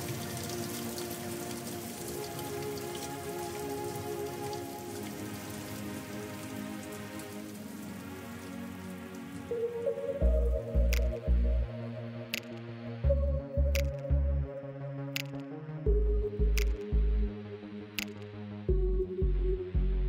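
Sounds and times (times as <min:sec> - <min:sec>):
steady rain: 0:00.0 - 0:14.2
soft sustained music chords: 0:00.0 - 0:20.0
beat with deep bass thumps: 0:10.2 - 0:11.7, 0:12.4 - 0:14.5, 0:15.2 - 0:17.4, 0:18.0 - 0:20.0
sharp clicks: 0:12.3 - 0:12.6, 0:13.8 - 0:14.0, 0:15.2 - 0:15.5, 0:18.0 - 0:18.3.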